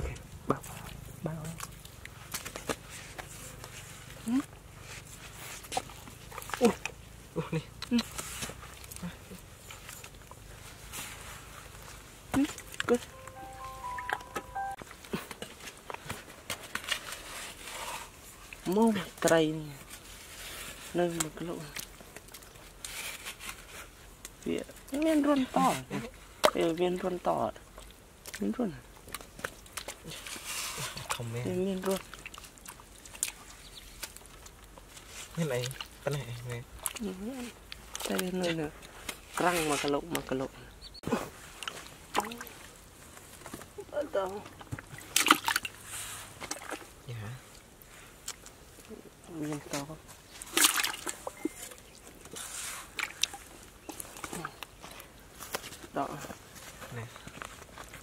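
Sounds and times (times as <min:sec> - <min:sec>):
wet mud squelching: 0:27.7 - 0:40.4, 0:44.2 - 0:55.8.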